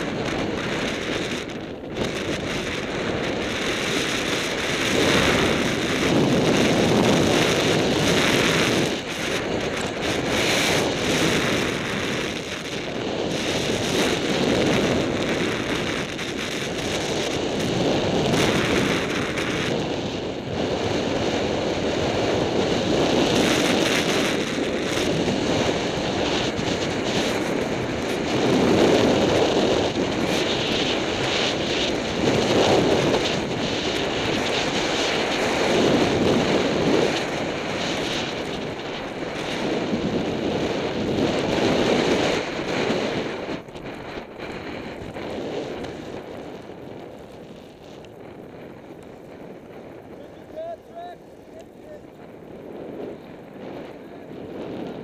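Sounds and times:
snowboard scraping over snow: 0.0 - 55.0
wind rushing over microphone: 0.0 - 55.0.

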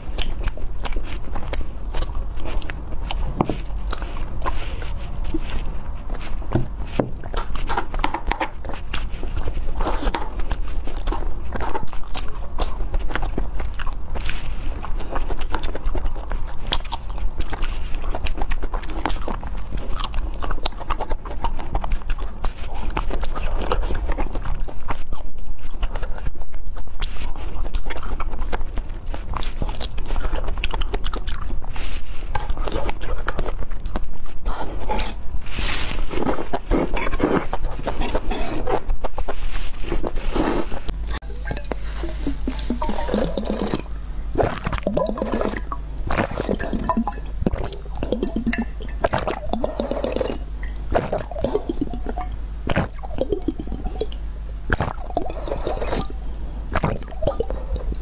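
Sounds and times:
chewing strawberries: 0.0 - 58.0.

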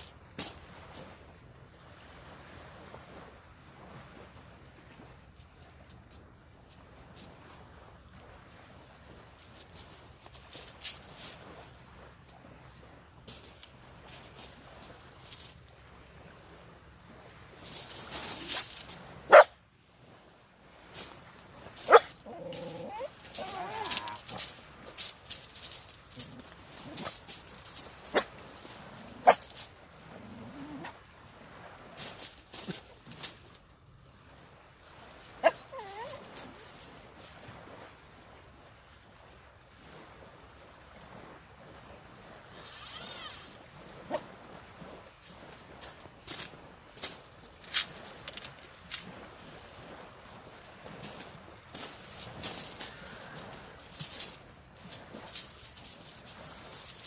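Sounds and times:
dog barking sharply: 19.3 - 19.5, 21.9 - 22.1
dog whining and whimpering: 21.9 - 24.2, 35.5 - 36.2.

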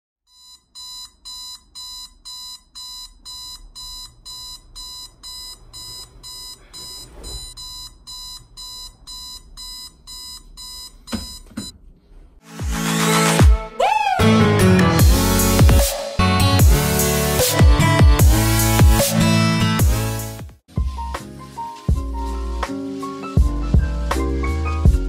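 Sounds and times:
electronic alarm beeping: 0.3 - 11.7.

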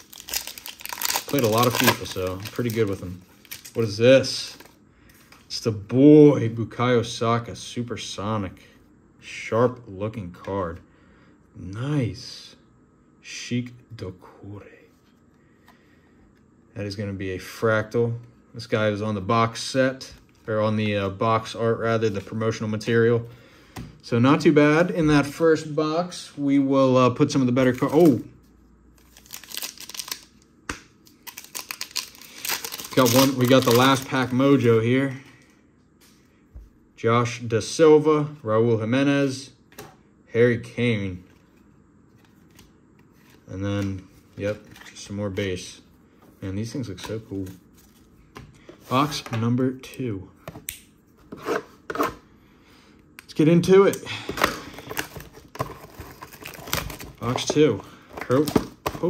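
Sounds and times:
card pack wrapper crinkling and tearing: 0.0 - 4.7, 29.0 - 34.7, 54.4 - 59.0.

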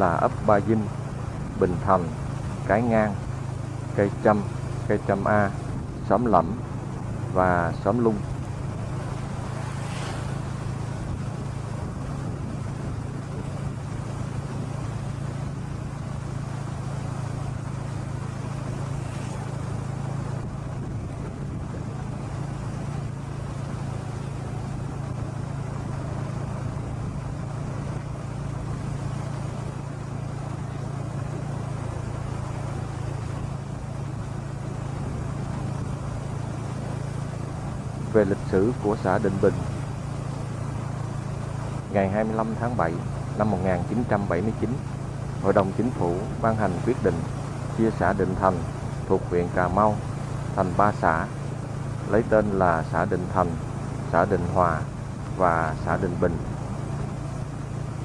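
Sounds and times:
road and wind noise: 0.0 - 58.0
small vehicle engine drone: 0.0 - 58.0.

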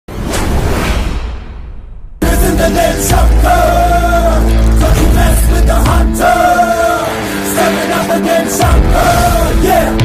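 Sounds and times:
whoosh: 0.1 - 2.2.

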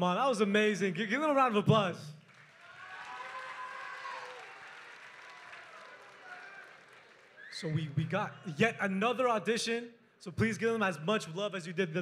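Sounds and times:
audience applause: 2.2 - 7.6
crowd cheering and voices: 2.6 - 8.5.

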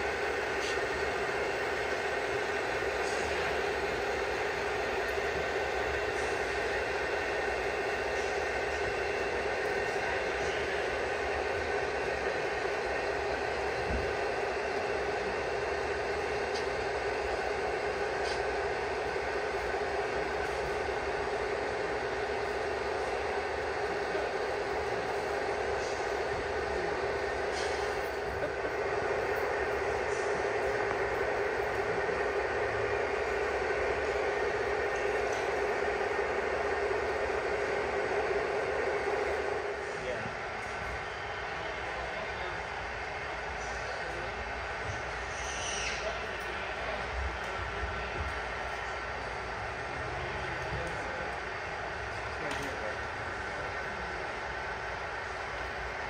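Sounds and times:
constant hum: 0.0 - 56.0
model train cars rumbling on track: 0.0 - 56.0.

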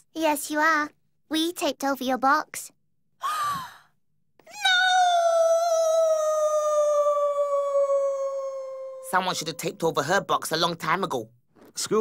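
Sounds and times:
woman wailing: 4.5 - 9.1.

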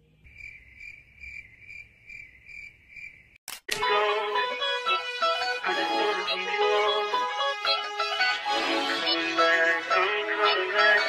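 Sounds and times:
cricket chirping: 0.2 - 3.4
guitar music: 3.7 - 11.0.

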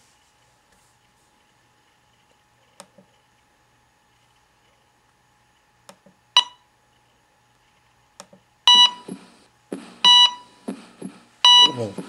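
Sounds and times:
heart monitor beeps: 8.7 - 12.0.

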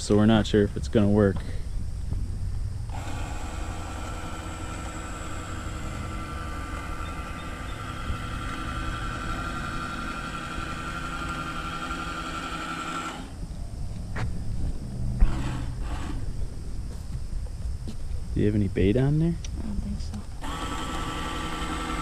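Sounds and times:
small electric motor whining: 2.8 - 13.4, 15.1 - 16.4, 20.1 - 22.0
low rumble: 13.3 - 18.4.

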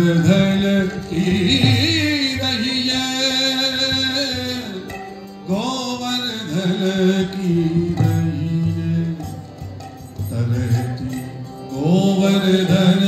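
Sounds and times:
harmonium: 0.0 - 13.0.

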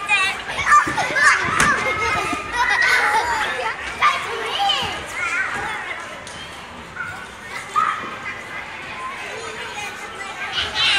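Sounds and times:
young children squealing and chattering: 0.0 - 10.9.

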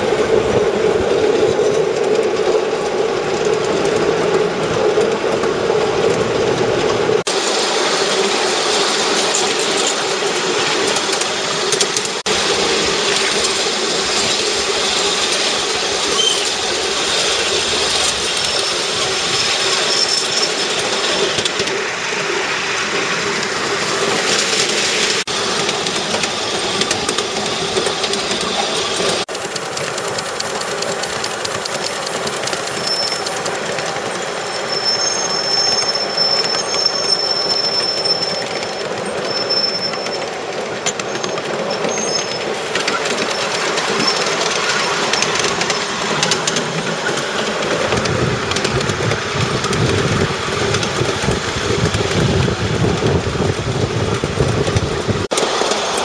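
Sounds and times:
miniature train wheels rumbling: 0.0 - 56.0
thin high-pitched squeal: 16.2 - 16.5, 30.2 - 40.3.

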